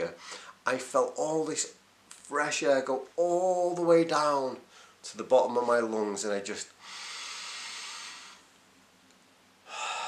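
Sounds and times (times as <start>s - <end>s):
man breathing in through nose: 0.2s - 0.6s, 6.8s - 8.5s, 9.6s - 10.0s.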